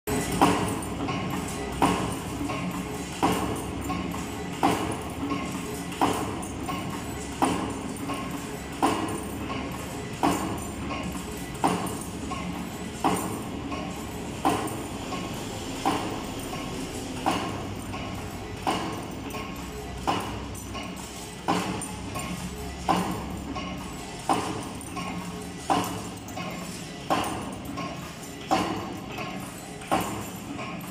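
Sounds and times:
sharp metallic clack: 0:00.1 - 0:30.9
steady motor hum: 0:00.1 - 0:30.9
wire forming machine running: 0:00.1 - 0:30.9.

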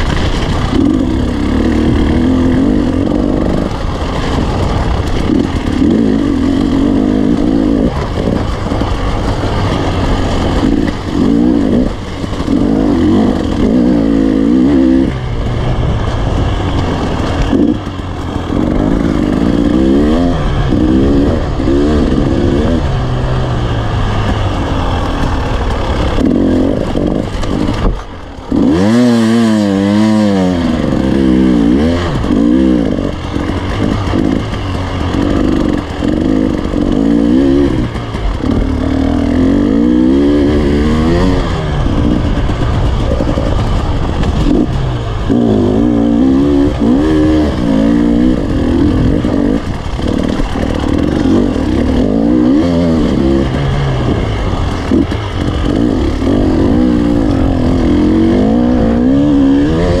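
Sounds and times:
dirt bike engine revving: 0:00.0 - 1:00.0.

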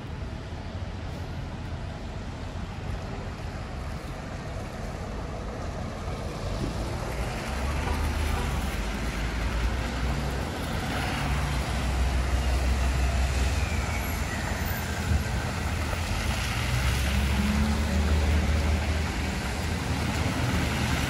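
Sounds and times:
tyres hissing on wet road: 0:00.4 - 0:21.0.

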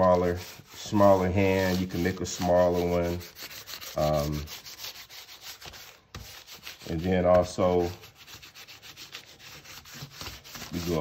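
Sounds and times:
hands rubbing paper: 0:00.0 - 0:11.0.

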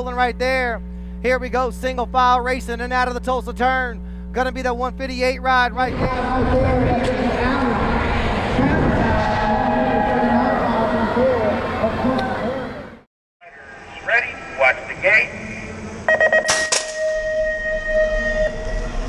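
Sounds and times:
announcer over pa: 0:10.7 - 0:16.6
electronic start tones and beeps: 0:16.1 - 0:19.0
metallic gate bang: 0:16.4 - 0:19.0.

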